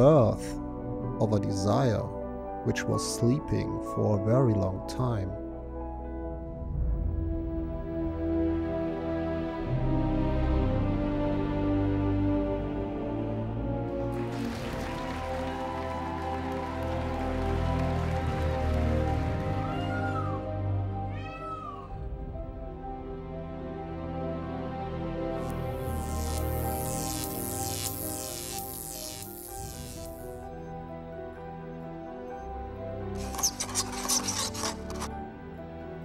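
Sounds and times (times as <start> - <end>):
slow ambient music: 0.0 - 36.0
cat meows: 19.6 - 20.4, 21.0 - 22.0
dry rasping scrape: 33.2 - 35.1.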